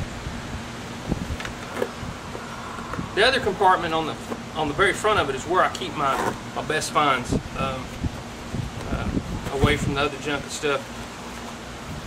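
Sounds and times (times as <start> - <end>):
low wind rumble on microphone: 0.0 - 10.1, 11.8 - 12.0.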